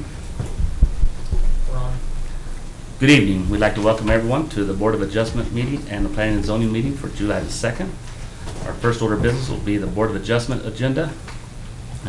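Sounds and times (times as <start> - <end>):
thumps on a microphone: 0.4 - 1.7.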